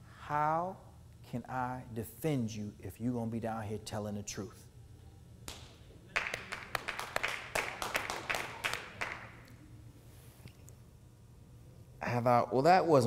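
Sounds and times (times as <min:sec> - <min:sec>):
audience clapping: 0:05.5 - 0:09.5.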